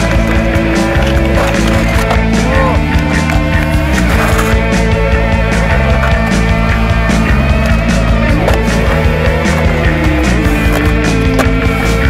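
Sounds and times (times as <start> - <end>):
music with steady drum beat: 0.0 - 12.0.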